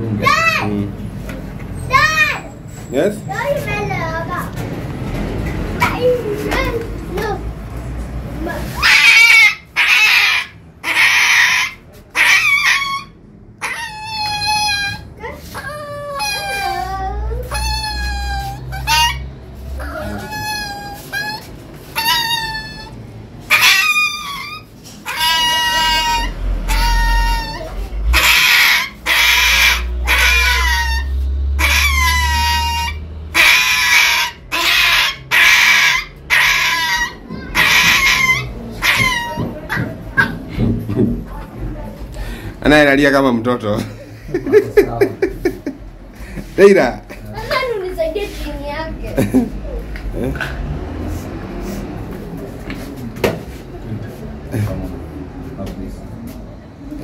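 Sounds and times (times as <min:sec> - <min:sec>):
puppy yelping: 0:08.7 - 0:40.6.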